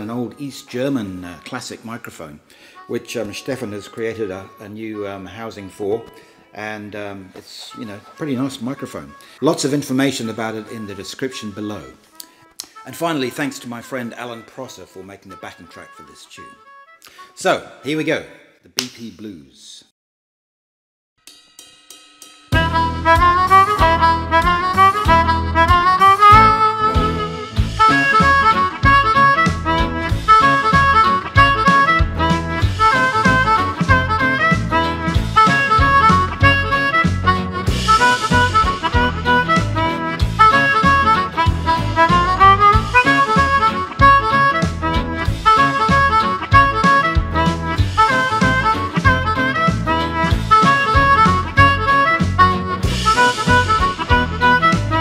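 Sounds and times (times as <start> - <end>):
backing track music: 0.0 - 17.9, 21.3 - 55.0
amplified harmonica melody: 2.4 - 18.0, 22.5 - 55.0.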